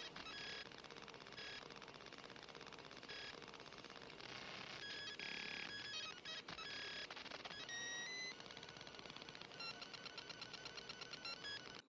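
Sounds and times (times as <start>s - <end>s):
faint electronic music: 0.0s - 11.9s.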